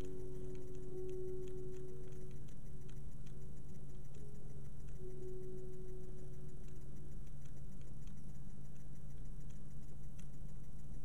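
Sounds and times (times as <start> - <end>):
soft sustained chord music: 0.0 - 8.6
clock-like ticking: 0.0 - 11.0.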